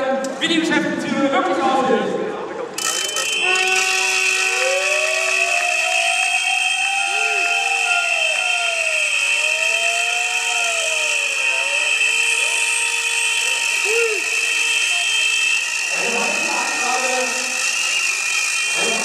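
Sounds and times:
crowd blowing shrill whistles: 0:02.8 - 0:19.0
low sliding horn tones: 0:02.8 - 0:19.0.

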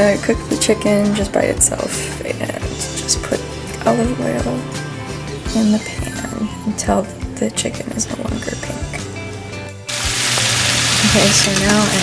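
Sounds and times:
soft background music: 0:00.0 - 0:12.0
chicken sizzling in frying pan: 0:09.9 - 0:12.0.

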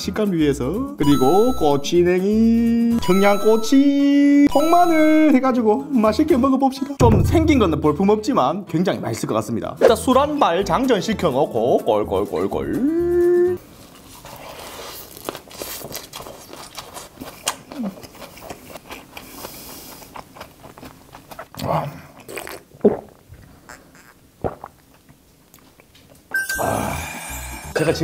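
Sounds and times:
close-up chewing: 0:15.0 - 0:22.8
wet mouth clicks: 0:21.2 - 0:26.2.

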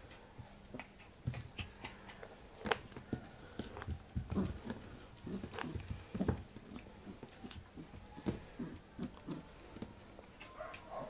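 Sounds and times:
puppy grunting and play-growling: 0:04.2 - 0:09.8.

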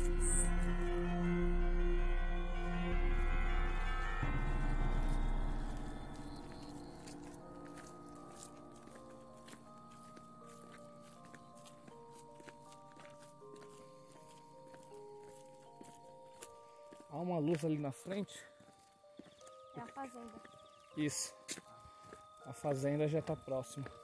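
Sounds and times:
ambient music of long held notes: 0:00.0 - 0:24.0
footsteps on dirt road: 0:04.2 - 0:24.0.

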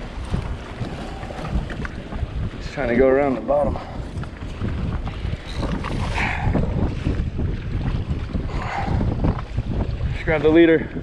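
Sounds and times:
water lapping against hull: 0:00.0 - 0:11.0
wind buffeting microphone: 0:00.0 - 0:11.0.

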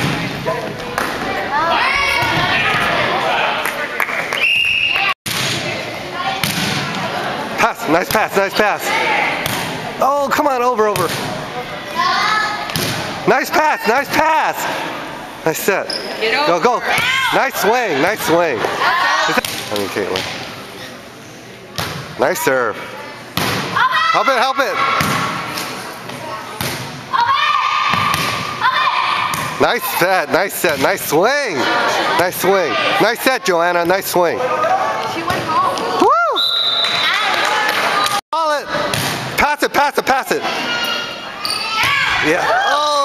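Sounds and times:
volleyball thudding: 0:06.3 - 0:07.0, 0:09.3 - 0:09.8, 0:12.7 - 0:13.1, 0:23.3 - 0:23.8, 0:24.9 - 0:25.7, 0:27.9 - 0:28.5, 0:29.3 - 0:29.6, 0:38.8 - 0:39.3.

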